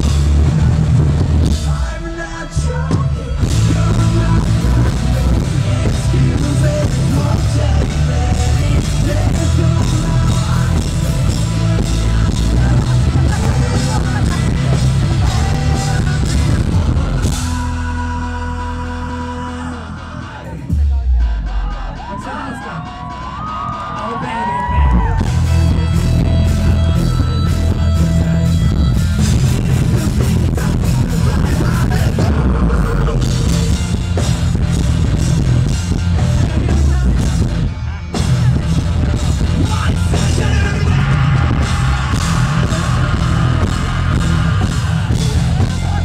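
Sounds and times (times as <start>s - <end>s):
heavy booming bass: 0.0s - 24.0s, 24.8s - 46.0s
distorted guitars: 0.0s - 46.0s
drum kit: 0.0s - 46.0s
rock band playing: 0.0s - 46.0s
sung vocals: 0.0s - 46.0s
crowd yelling and whooping: 2.0s - 33.7s, 36.5s - 46.0s.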